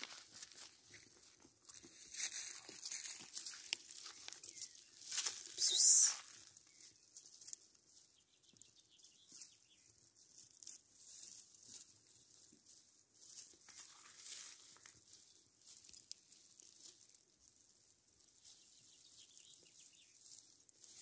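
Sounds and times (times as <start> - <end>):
rustling of dry grass: 0.0 - 21.0.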